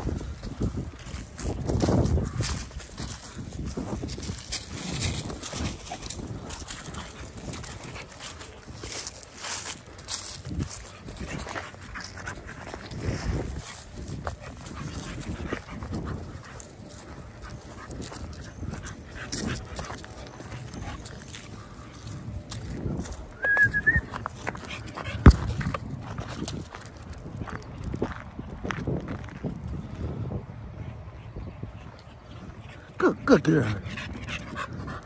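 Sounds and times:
rustling in grass and leaves: 0.0 - 27.8.

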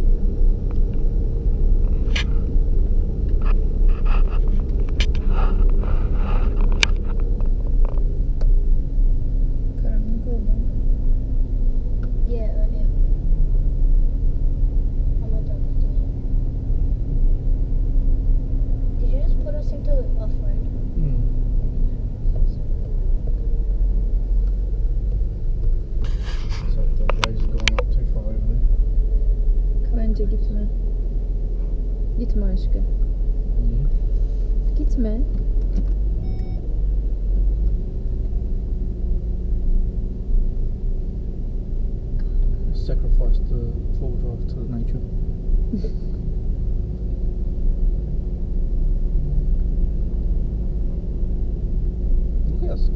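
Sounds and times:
low rumble of engine and tyres: 0.0 - 52.9
steady hum: 0.0 - 52.9
short high beep: 36.2 - 36.7.

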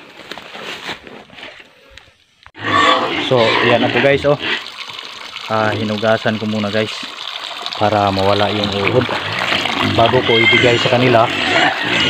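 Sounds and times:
pigs grunting: 2.6 - 5.1, 8.5 - 12.0.

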